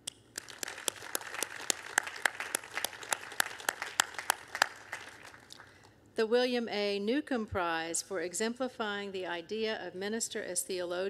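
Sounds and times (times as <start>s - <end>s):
small audience applauding: 0.4s - 5.9s.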